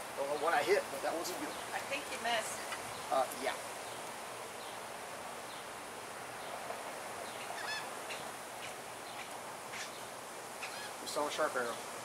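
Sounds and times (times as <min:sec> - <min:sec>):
distant bird calls: 0:00.0 - 0:12.0.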